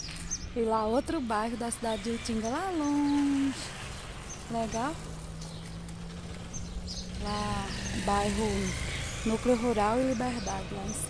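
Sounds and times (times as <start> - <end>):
outdoor rumble: 0.0 - 11.0
small motorcycle engine passing: 0.0 - 11.0.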